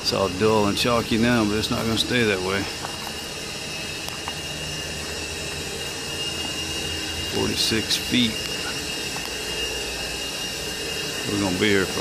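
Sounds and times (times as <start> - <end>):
high-pitched machine whine: 0.0 - 12.0
low machine hum: 0.0 - 12.0
machine hiss: 0.0 - 12.0.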